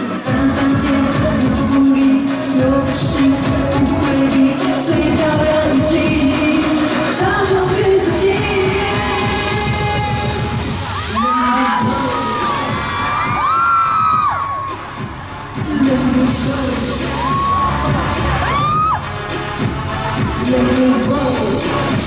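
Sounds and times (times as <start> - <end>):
crowd screaming and cheering: 0.0 - 22.0
live pop music: 0.0 - 22.0.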